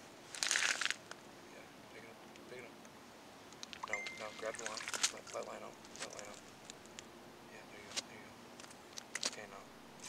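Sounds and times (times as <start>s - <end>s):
crunching rustle on snowy ice: 0.3s - 1.2s.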